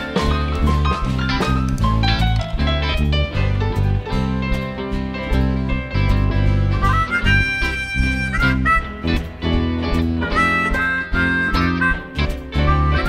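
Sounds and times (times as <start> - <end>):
blues-rock band playing: 0.0 - 13.0
harmonica bending notes: 6.1 - 13.0.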